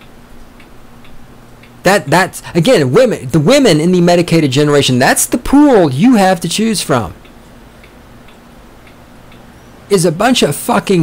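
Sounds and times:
faint ticking: 0.0 - 11.0
low steady hum: 0.0 - 11.0.

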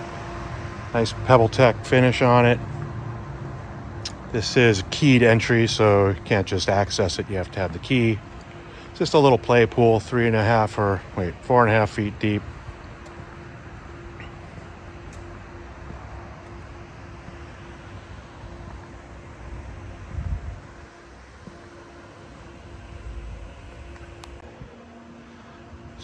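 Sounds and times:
faint constant hum: 0.0 - 26.0
low rumble: 1.9 - 24.8.

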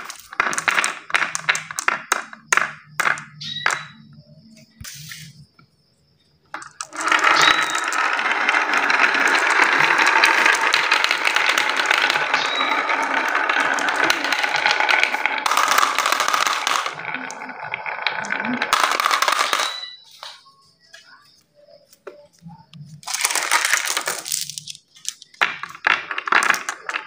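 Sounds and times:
marbles dropping into plastic bin: 0.0 - 4.1, 6.5 - 20.4, 23.0 - 27.0
marbles clattering down wooden track: 0.0 - 4.2, 6.5 - 20.4, 23.0 - 27.0.

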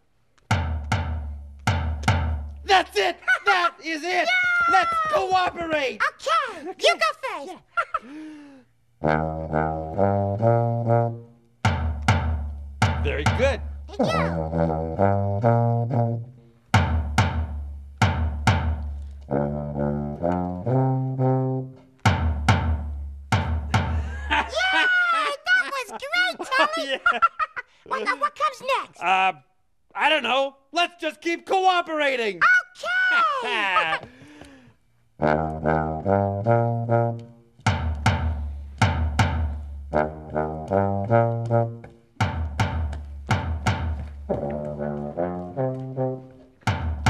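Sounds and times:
drum beats: 0.0 - 3.3, 4.2 - 6.0, 9.0 - 24.8, 35.3 - 47.0
tuba playing low notes: 9.0 - 24.0, 35.2 - 47.0.

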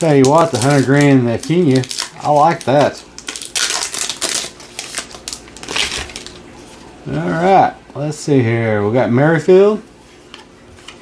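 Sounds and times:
wrapper crinkling as torn open: 0.0 - 6.4.

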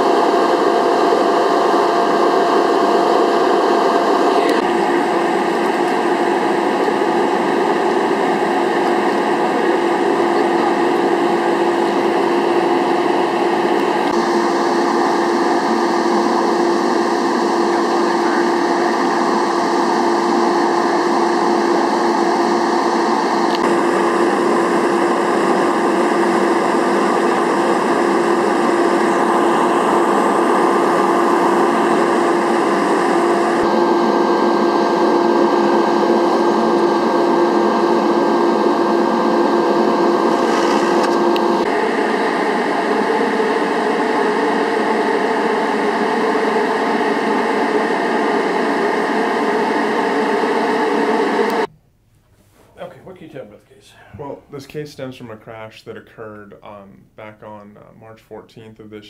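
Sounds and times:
mechanical drone: 0.0 - 51.7.

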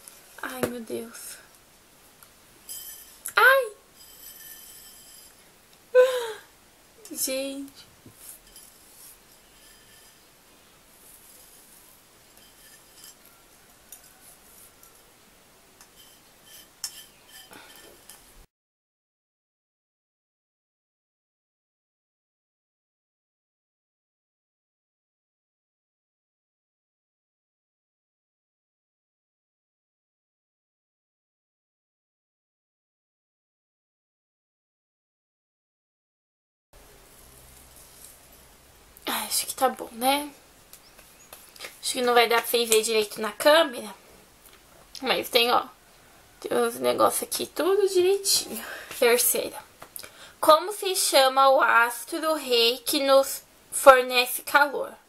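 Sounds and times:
low hiss with light hum: 0.0 - 18.5, 36.8 - 55.0
soft rubbing of flour: 1.1 - 5.6, 7.7 - 18.5, 36.8 - 38.7.

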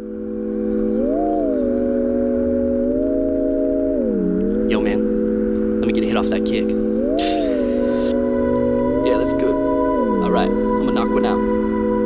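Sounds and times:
electronic keyboard chord: 0.0 - 12.0.

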